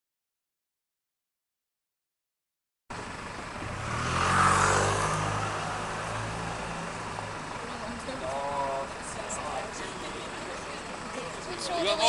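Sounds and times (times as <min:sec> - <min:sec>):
vehicle engine running: 0:02.9 - 0:12.0.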